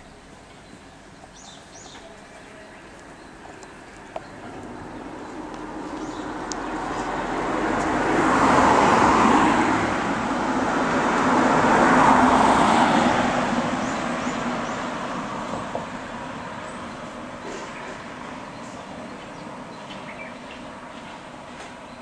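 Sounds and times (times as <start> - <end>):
road traffic passing: 0.0 - 22.0.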